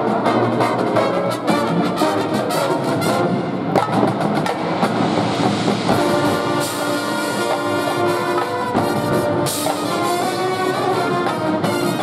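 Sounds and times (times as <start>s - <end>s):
drum corps percussion: 0.0s - 12.0s
horns holding notes: 5.9s - 12.0s.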